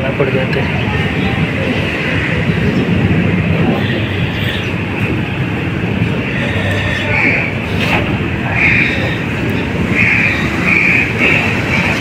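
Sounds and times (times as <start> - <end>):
loud rumbling background noise: 0.0 - 12.0.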